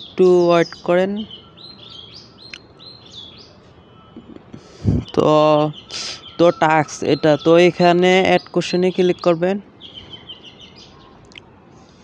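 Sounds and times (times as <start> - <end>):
bird chirping: 0.0 - 12.0.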